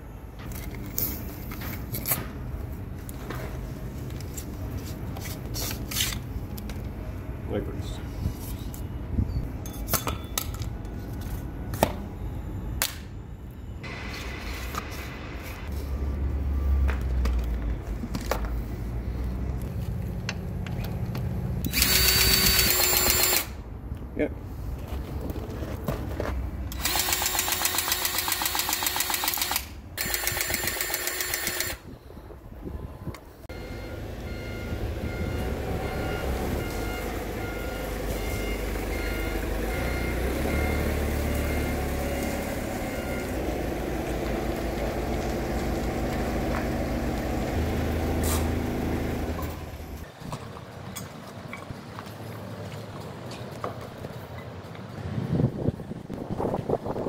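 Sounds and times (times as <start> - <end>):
cordless grease gun pumping: 21.7 - 23.6, 26.7 - 31.8.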